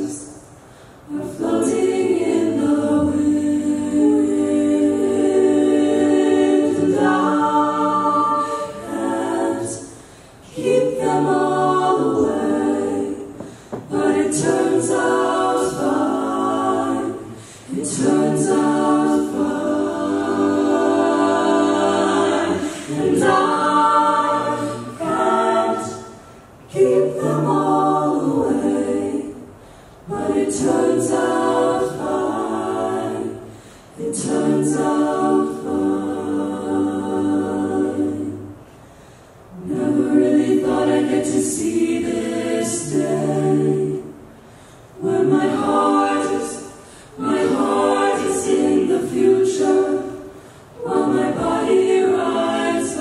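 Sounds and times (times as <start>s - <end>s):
a cappella group singing: 0.0s - 53.0s.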